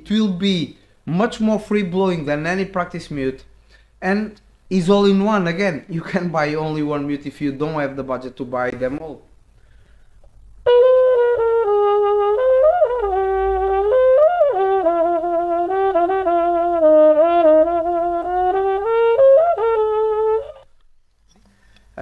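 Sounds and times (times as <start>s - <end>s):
muted trumpet melody: 10.6s - 20.7s.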